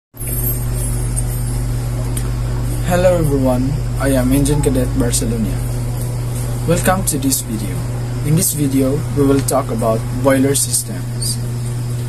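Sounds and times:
low hum: 0.2s - 12.0s.

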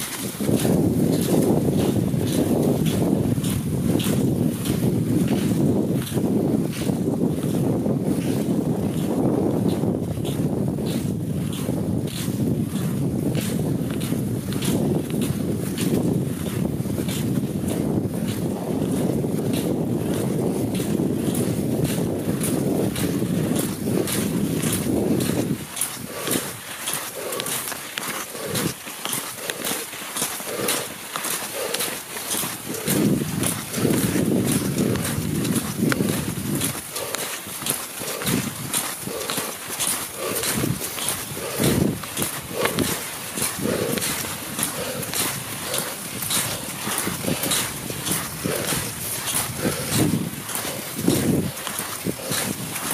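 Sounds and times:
skis and poles scraping on snow: 0.0s - 6.9s, 22.5s - 52.9s
wind buffeting microphone: 0.0s - 52.9s
person breathing hard: 23.0s - 52.9s.

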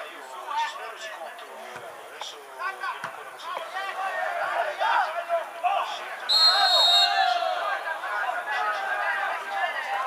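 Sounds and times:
players shouting: 2.6s - 10.0s
referee's whistle blast: 6.3s - 7.4s.

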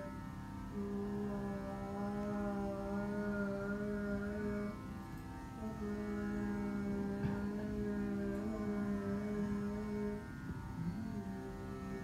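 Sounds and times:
man singing long steady note: 0.0s - 12.0s.

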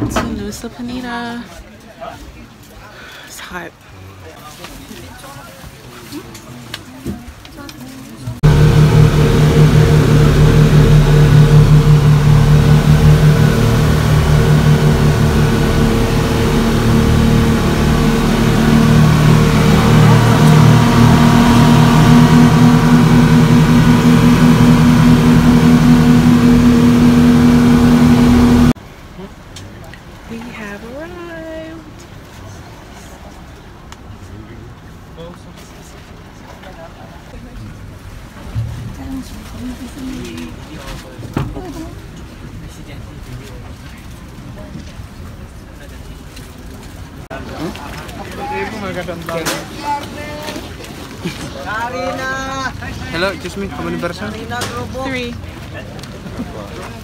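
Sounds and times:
boat engines droning: 8.0s - 57.0s
higher hum: 8.4s - 28.8s.

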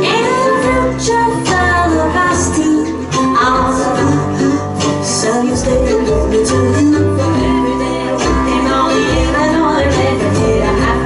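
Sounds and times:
fiddle: 0.0s - 11.0s
mandolin: 0.0s - 11.0s
plucked upright bass: 0.0s - 11.0s.

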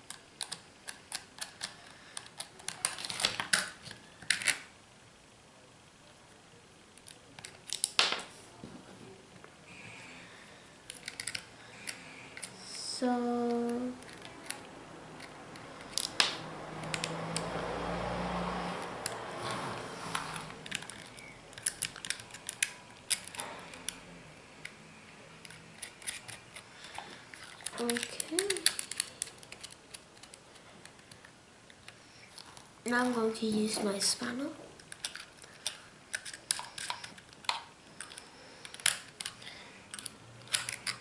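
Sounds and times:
small metal parts clicking: 10.9s - 12.5s, 20.6s - 24.0s, 25.4s - 32.5s, 34.8s - 41.0s.

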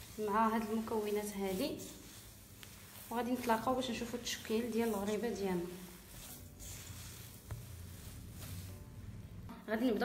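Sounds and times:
hand working dough in metal bowl: 0.0s - 9.5s.

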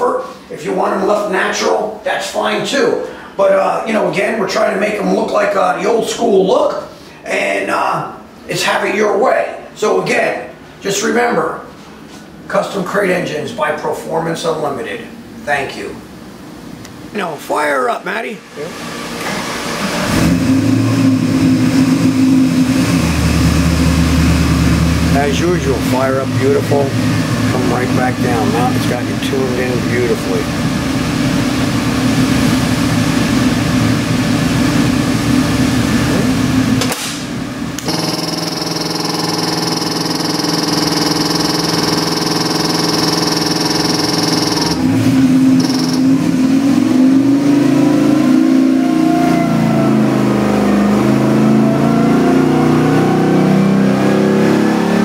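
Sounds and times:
engine revving on dyno: 18.5s - 55.0s
engine starting and idling: 36.9s - 46.1s.

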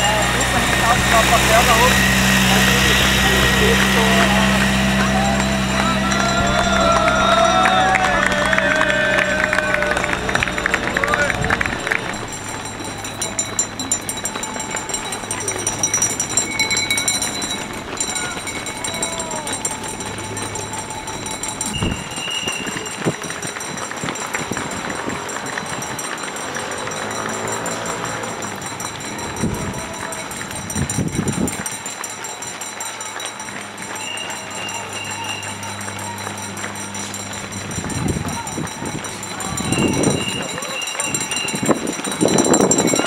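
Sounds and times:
indistinct spectator voices: 0.0s - 23.2s
runners' footsteps on asphalt: 0.0s - 43.0s.

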